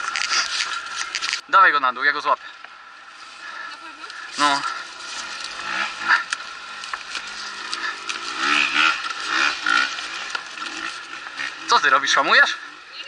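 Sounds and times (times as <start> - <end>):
bike scraping against sand: 3.1 - 12.7.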